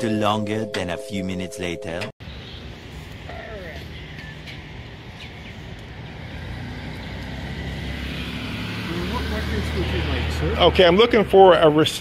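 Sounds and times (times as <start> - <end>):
traffic hum: 0.0 - 12.0.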